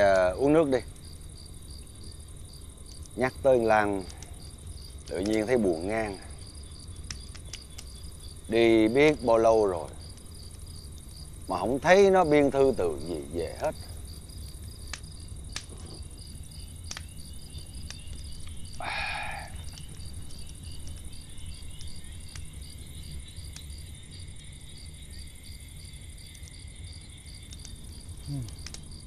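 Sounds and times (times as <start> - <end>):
crickets chirping: 0.0 - 29.0.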